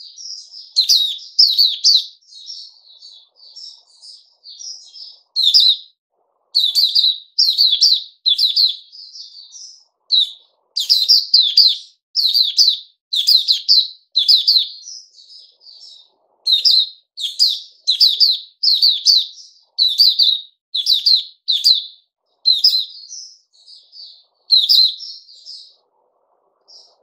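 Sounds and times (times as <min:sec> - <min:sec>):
bird chirping song: 0:00.0 - 0:27.0.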